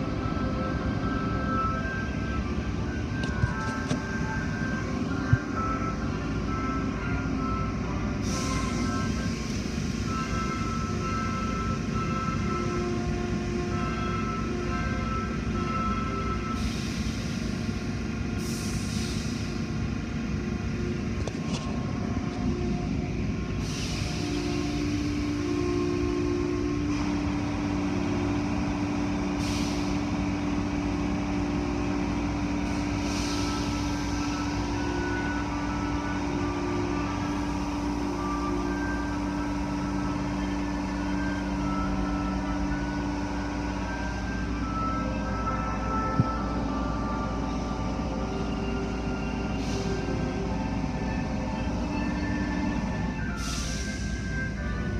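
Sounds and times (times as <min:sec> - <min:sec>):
car wash machinery rumbling: 0:00.0 - 0:54.9.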